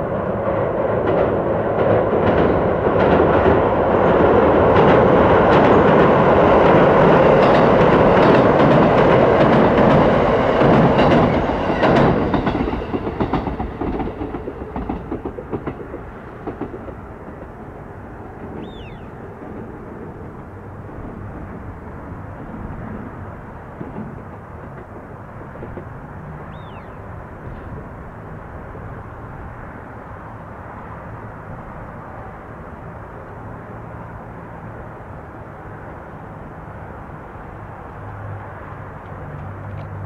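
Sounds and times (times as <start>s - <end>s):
train wheels rumbling on steel bridge: 0.0s - 40.0s.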